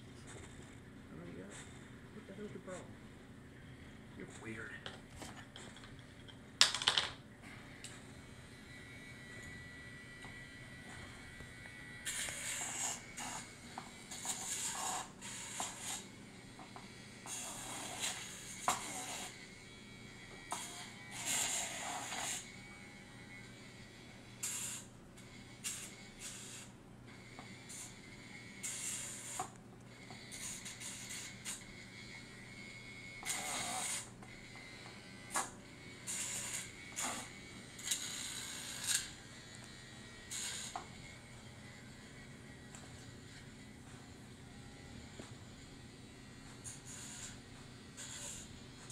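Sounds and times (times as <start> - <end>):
rotary nail file humming: 7.6 - 48.9
file rasping on toenails: 12.1 - 13.5, 14.1 - 16.1, 17.3 - 19.4, 20.6 - 22.5, 48.0 - 48.9.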